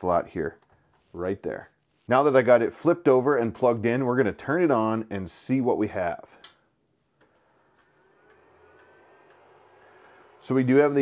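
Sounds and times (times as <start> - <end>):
fans whining: 7.2 - 11.0
printer low hum: 7.2 - 11.0.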